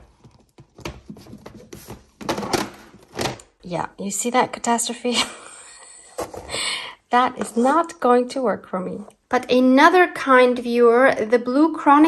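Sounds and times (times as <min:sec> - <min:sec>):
plastic boxes scraping and clattering: 0:00.0 - 0:03.5, 0:06.1 - 0:06.6.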